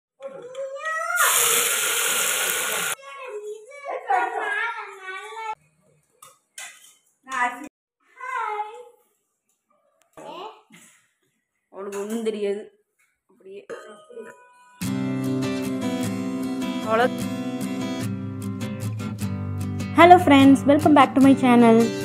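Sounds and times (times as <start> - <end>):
loud hiss: 1.2 - 3.0.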